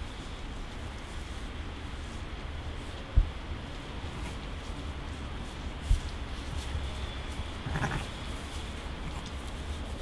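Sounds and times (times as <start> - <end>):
sheep bleating: 7.6 - 8.1.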